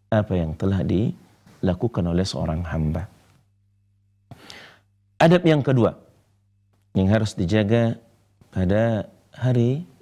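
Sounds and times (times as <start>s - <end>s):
man talking: 0.1s - 3.2s, 5.2s - 6.1s, 6.9s - 10.0s
man's quick intake of breath: 4.3s - 4.9s.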